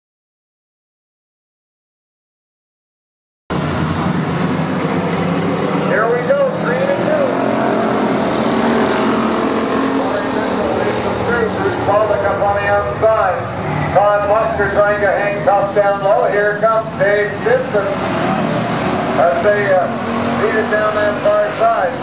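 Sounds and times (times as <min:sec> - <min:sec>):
stock car engines racing: 0:03.5 - 0:22.0.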